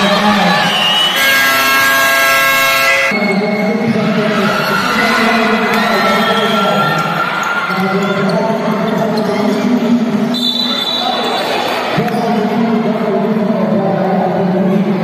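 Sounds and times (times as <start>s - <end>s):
crowd voices echoing: 0.0s - 15.0s.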